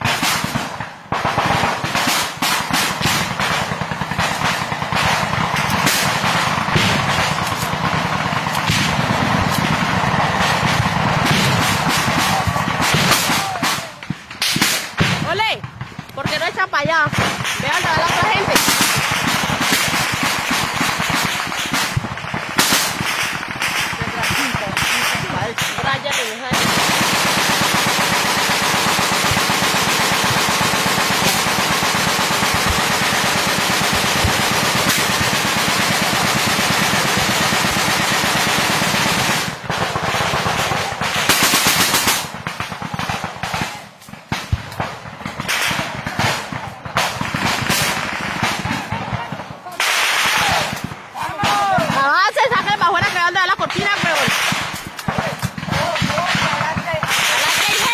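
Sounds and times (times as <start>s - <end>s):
automatic gunfire: 0.0s - 57.9s.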